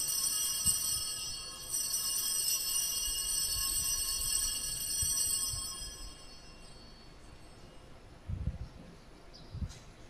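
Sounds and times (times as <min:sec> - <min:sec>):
altar bells jingling: 0:00.0 - 0:07.8.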